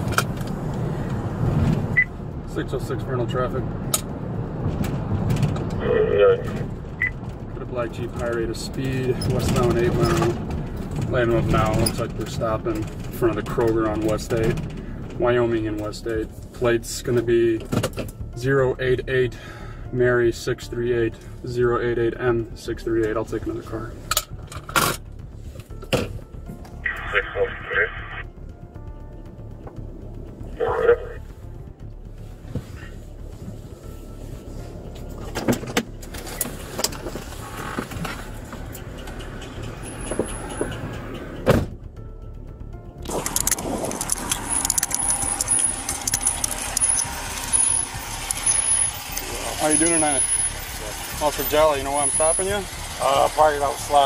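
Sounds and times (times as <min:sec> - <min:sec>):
road noise rushing: 0:00.0 - 0:54.0.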